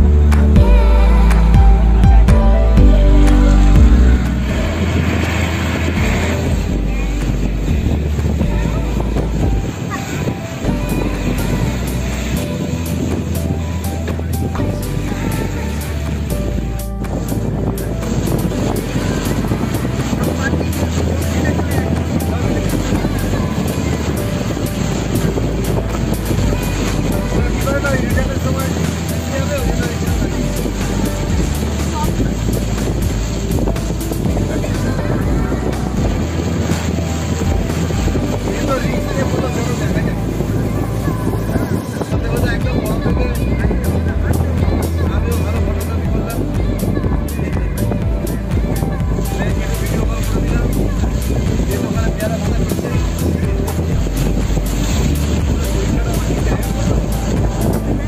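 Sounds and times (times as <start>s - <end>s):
music: 0.0s - 58.0s
vehicle road and engine rumble: 0.0s - 58.0s
voices: 0.0s - 58.0s.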